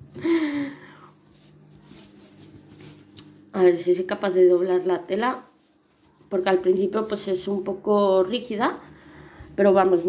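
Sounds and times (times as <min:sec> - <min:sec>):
faint handling noise: 0:01.1 - 0:09.8.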